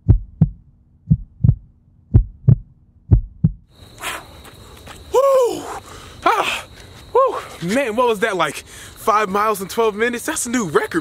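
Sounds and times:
heartbeat thumps: 0.0s - 3.7s
low hum: 0.0s - 3.7s
man panting: 4.0s - 7.6s.

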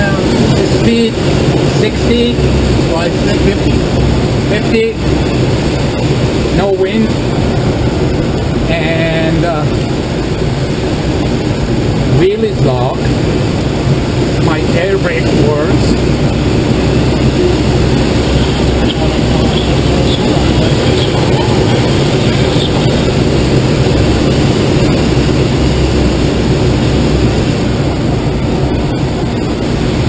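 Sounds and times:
air rushing over glider canopy: 0.0s - 30.0s.

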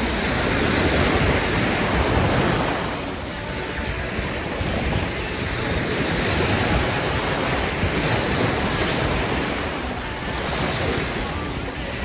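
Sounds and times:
small waves breaking on beach: 0.0s - 12.0s
wind rumble on microphone: 0.0s - 12.0s.

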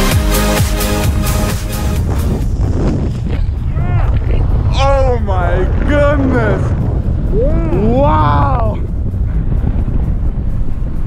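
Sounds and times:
wind buffeting microphone: 1.4s - 11.0s.

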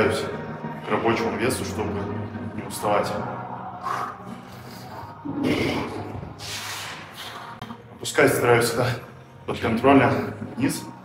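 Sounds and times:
hissing exhalations: 3.8s - 7.6s
man breathing hard: 3.8s - 7.8s.

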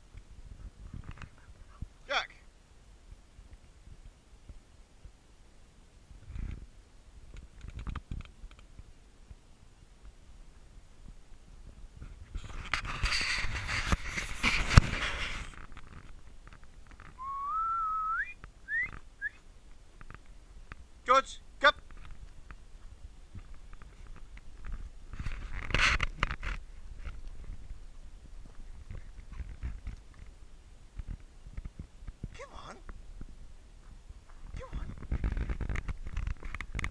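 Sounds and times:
person whistling: 17.2s - 19.4s
short rising-and-falling call: 17.2s - 19.4s
footsteps on dirt path: 21.8s - 30.4s, 32.9s - 36.9s.

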